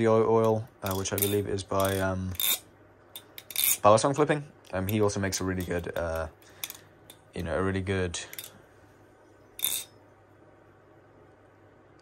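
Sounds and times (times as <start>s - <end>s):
butterfly knife handles clacking: 0.4s - 2.6s, 3.2s - 3.9s, 4.7s - 7.3s, 8.3s - 8.6s, 9.6s - 9.9s.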